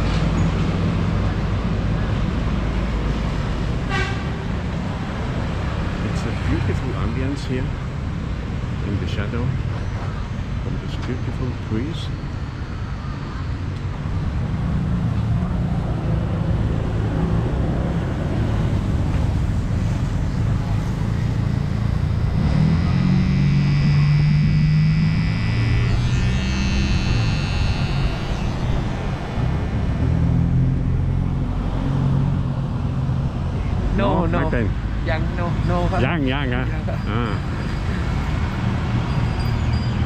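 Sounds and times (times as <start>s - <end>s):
outdoor traffic: 0.0s - 40.0s
electric hair clippers running: 21.5s - 29.5s.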